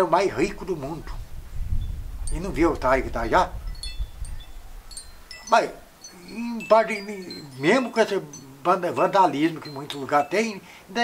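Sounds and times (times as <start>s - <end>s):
high-pitched chime tones: 5.2s - 10.6s.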